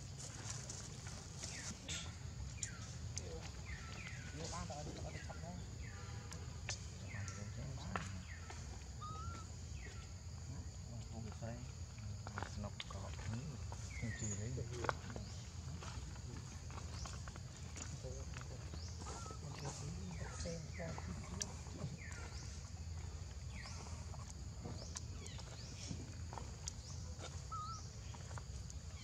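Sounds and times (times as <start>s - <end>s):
monkeys squeaking: 8.4s - 9.5s, 18.9s - 22.6s, 27.2s - 28.0s.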